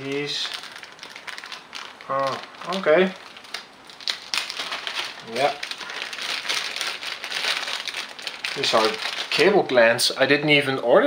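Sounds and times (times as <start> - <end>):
plastic bag crinkling: 0.0 - 10.1.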